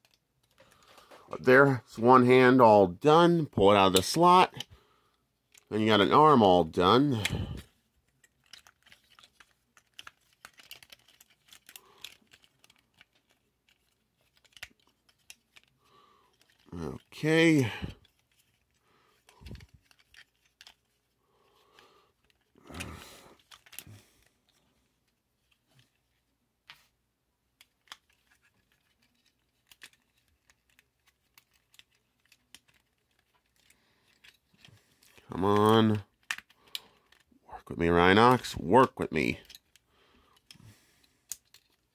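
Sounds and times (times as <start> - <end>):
plastic toy clicking and rubbing: 0.0 - 1.1, 5.4 - 5.7, 7.0 - 24.7, 27.5 - 37.4, 38.3 - 41.9
man making short voiced sound: 16.7 - 18.0.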